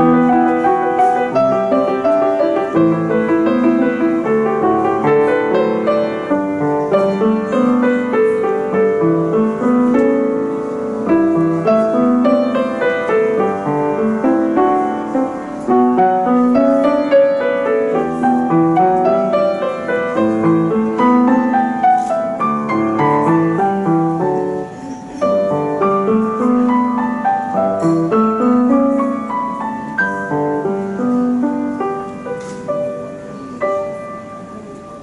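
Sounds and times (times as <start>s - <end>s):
solo piano: 0.0s - 35.0s.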